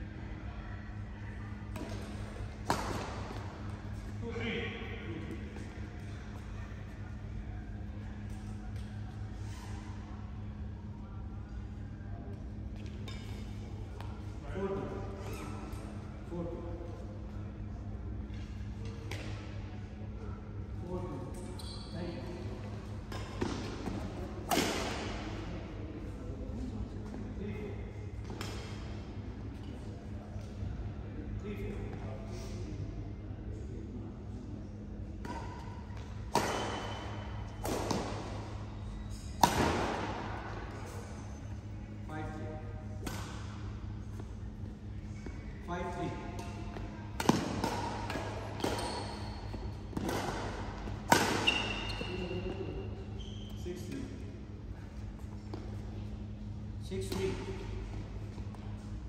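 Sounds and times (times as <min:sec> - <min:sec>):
low hum of sports hall: 0:00.0 - 0:59.0
racket hitting shuttlecock: 0:23.1 - 0:25.2, 0:35.2 - 0:38.5, 0:39.1 - 0:40.4, 0:43.0 - 0:43.6, 0:46.4 - 0:52.3.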